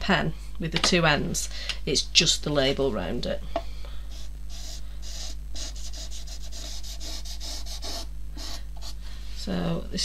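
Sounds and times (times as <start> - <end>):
low steady hum: 0.0 - 10.0
marker scratching on wood: 4.1 - 9.0.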